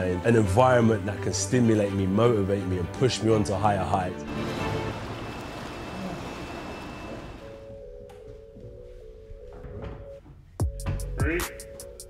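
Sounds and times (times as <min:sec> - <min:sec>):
soft music tones: 0:00.0 - 0:12.0.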